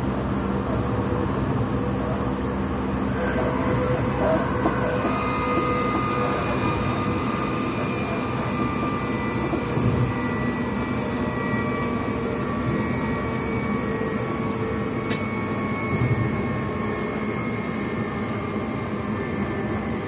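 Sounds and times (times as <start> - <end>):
high-pitched whine: 0.0 - 20.0
train wheels rumbling on rails: 0.0 - 20.0.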